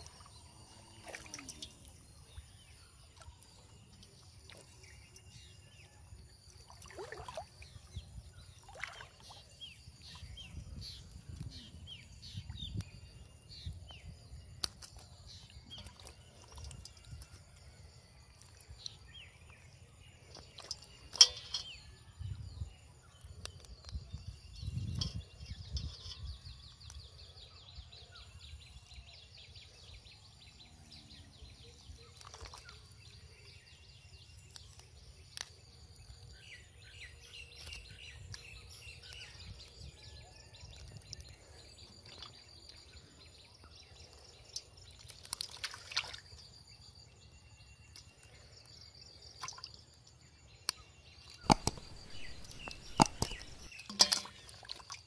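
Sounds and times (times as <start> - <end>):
water sloshing and dripping: 0.0 - 5.6, 6.2 - 10.6, 14.6 - 19.3, 20.2 - 22.0, 32.0 - 33.1, 40.8 - 43.0, 44.0 - 46.6, 49.2 - 50.2, 51.3 - 55.0
water splashing: 1.0 - 2.0, 6.6 - 7.7, 45.1 - 46.3, 51.4 - 55.0
clicks and knocks on steel bowl: 51.5 - 54.5.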